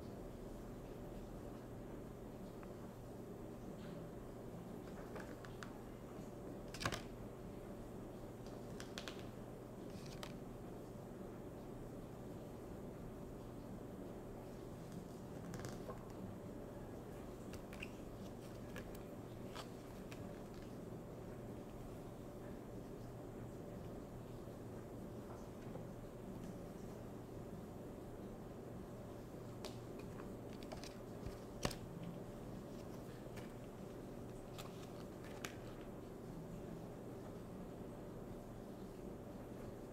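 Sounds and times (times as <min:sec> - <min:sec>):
steady low hum: 0:00.0 - 0:39.9
paper cards rustling and clicking: 0:04.8 - 0:05.9, 0:06.6 - 0:07.1, 0:08.4 - 0:10.4, 0:14.9 - 0:16.2, 0:17.4 - 0:20.8, 0:29.5 - 0:36.0.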